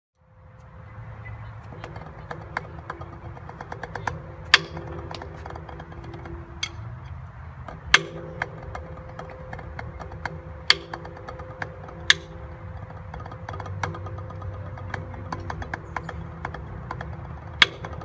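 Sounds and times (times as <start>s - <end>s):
low hum: 0.2s - 18.0s
drumsticks on practice pad: 0.4s - 18.0s.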